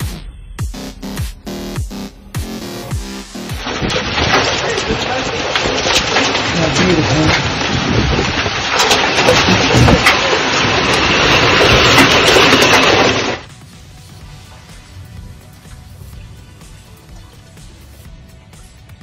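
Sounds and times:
heavy rain and hail: 0:03.4 - 0:13.5
sharp cracks: 0:03.4 - 0:13.5.

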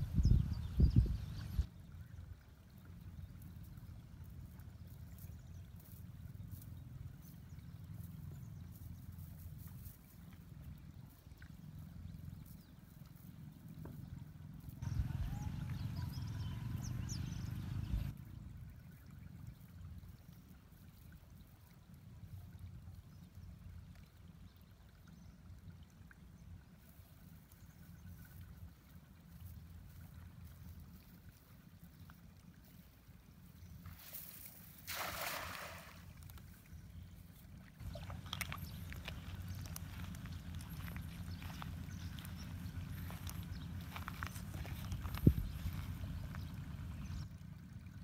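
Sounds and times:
low steady rumble: 0:00.0 - 0:34.9, 0:35.6 - 0:48.0
water trickling and dripping: 0:00.9 - 0:48.0
wet net handled by hand: 0:37.8 - 0:46.4.

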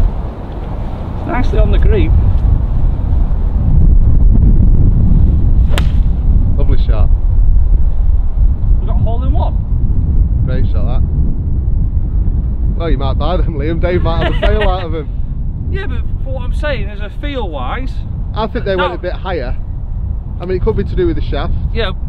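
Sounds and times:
wind rumble on microphone: 0:00.0 - 0:22.0
golf club striking ball: 0:05.6 - 0:06.1.

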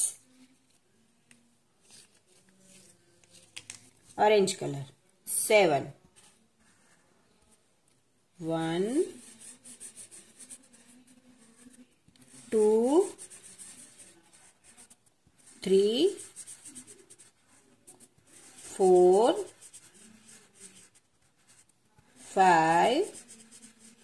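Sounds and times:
pen scratching on paper: 0:08.8 - 0:24.0.

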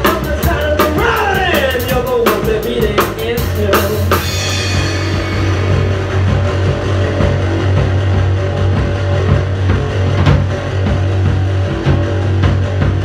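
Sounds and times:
drum kit: 0:00.0 - 0:13.0
rock band playing: 0:00.0 - 0:13.0.

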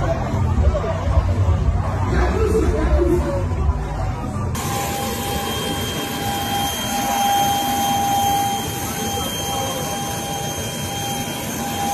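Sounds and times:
jet turbine engines whining: 0:04.6 - 0:11.9.

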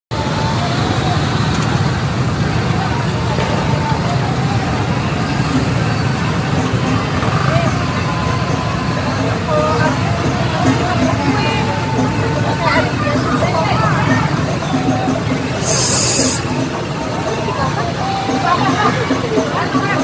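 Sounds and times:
motorbike engines rumbling: 0:00.1 - 0:20.0
people's voices and calls: 0:00.1 - 0:20.0.

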